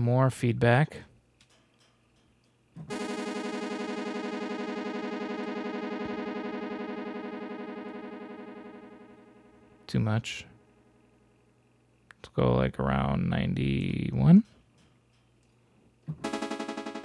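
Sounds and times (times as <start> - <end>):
synth note with buzzy delay echoes: 2.9 - 11.2, 16.2 - 17.0.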